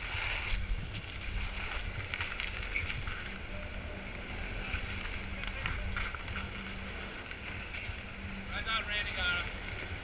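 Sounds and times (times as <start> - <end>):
wind buffeting microphone: 0.0 - 8.5
skis scraping over snow: 0.0 - 10.0.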